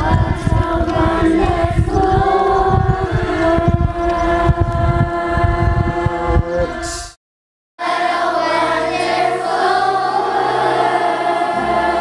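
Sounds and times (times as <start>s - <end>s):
choir holding a chord: 0.0s - 6.9s, 7.8s - 12.0s
low thumps: 0.0s - 7.2s.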